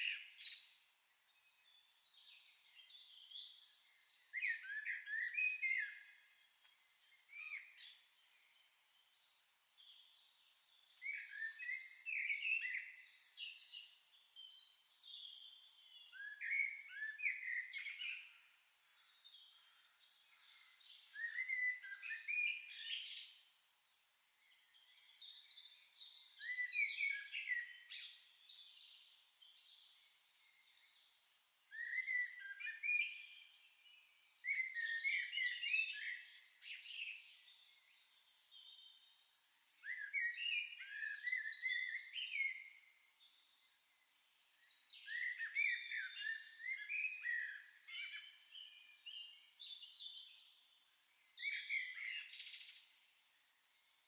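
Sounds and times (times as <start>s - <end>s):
songbirds chirping and whistling: 0.0s - 54.0s.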